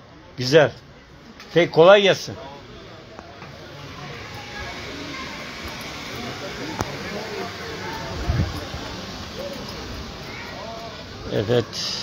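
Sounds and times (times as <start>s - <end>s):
faint background voices: 0.0s - 12.0s
steady outdoor hiss: 0.0s - 12.0s.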